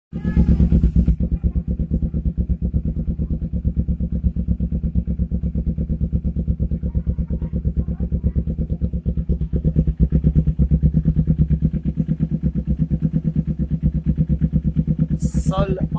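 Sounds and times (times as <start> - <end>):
motorcycle engine idling: 0.1 - 15.9.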